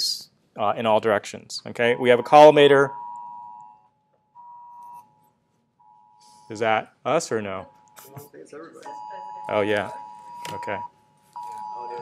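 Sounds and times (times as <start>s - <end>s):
phone emergency alert tones: 1.8s - 5.2s, 8.9s - 12.0s.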